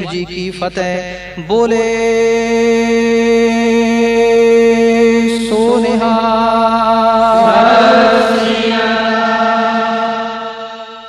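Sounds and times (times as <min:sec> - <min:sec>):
devotional music held chord: 0:01.8 - 0:11.0
voices chanting: 0:06.8 - 0:11.0.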